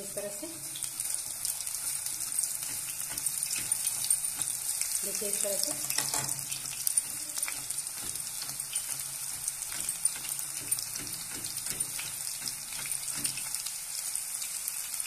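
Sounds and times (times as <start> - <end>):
hot oil sizzling and crackling: 0.0 - 15.0.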